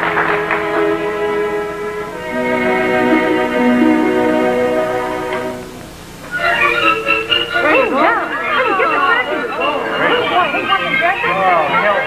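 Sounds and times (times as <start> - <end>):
orchestral strings holding chords: 0.0 - 12.0.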